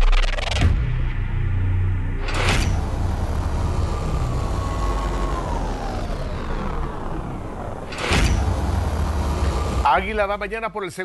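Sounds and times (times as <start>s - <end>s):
deep steady rumble: 0.0s - 10.7s
whoosh: 2.2s - 10.2s.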